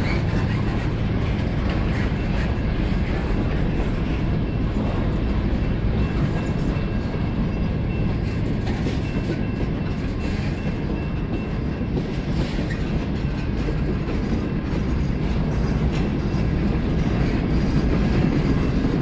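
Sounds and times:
freight train wheels rumbling: 0:00.0 - 0:19.0.

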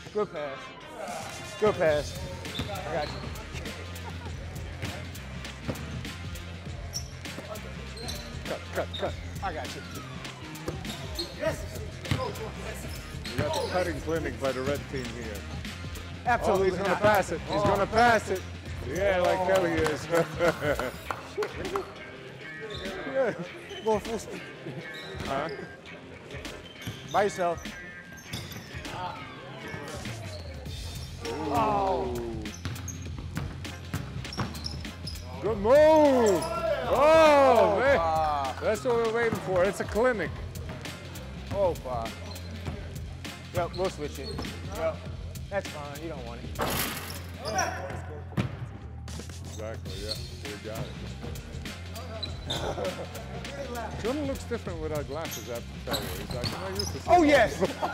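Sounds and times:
basketball bouncing on court: 0:12.0 - 0:12.4, 0:32.6 - 0:35.2
music with steady bass: 0:50.3 - 0:54.9.

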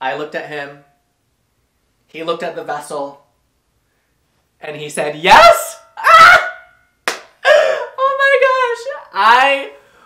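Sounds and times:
man squealing excitedly: 0:05.3 - 0:06.8, 0:07.4 - 0:08.9
sharp slap: 0:07.0 - 0:07.4.

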